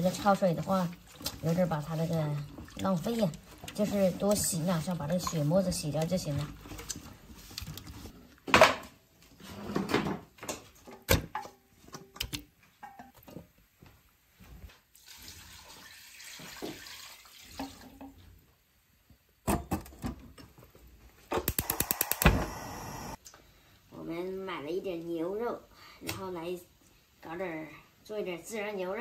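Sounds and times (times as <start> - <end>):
water sloshing and splashing: 0.0 - 8.1
water pouring into a pot: 14.9 - 18.1
gas stove igniter clicks: 21.5 - 23.1.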